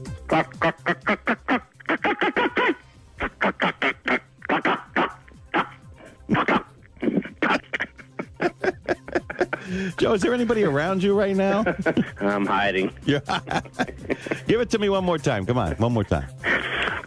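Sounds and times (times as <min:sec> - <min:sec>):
radio music bed: 0:00.0 - 0:17.0
man imitating chicken clucks: 0:00.3 - 0:06.7
person laughing: 0:00.3 - 0:14.5, 0:16.4 - 0:17.0.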